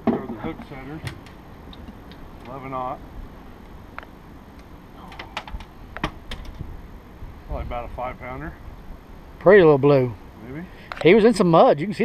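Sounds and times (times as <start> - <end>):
sharp clicks and light knocks: 3.9 - 6.6.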